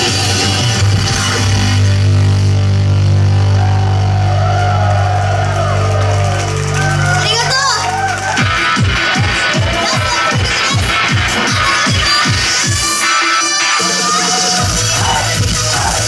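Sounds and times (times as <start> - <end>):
crowd shouting: 3.3 - 16.0
electronic beat with booming kicks: 8.1 - 13.0, 13.8 - 16.0.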